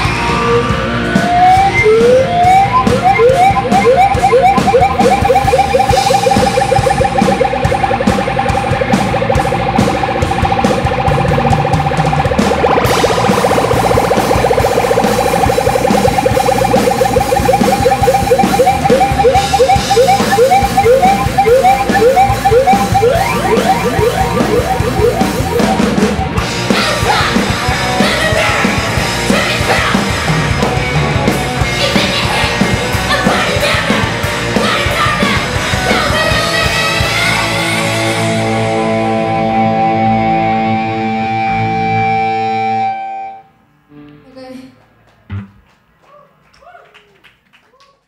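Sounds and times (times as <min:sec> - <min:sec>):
punk band playing live: 0:00.0 - 0:42.9
drums: 0:00.0 - 0:43.0
electric guitar bending notes: 0:00.2 - 0:28.0, 0:38.0 - 0:44.3.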